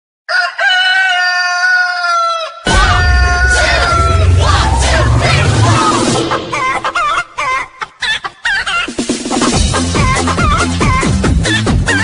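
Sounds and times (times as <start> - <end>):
rooster crowing: 0.3 - 5.4
music with heavy bass: 2.7 - 7.1, 9.0 - 12.0.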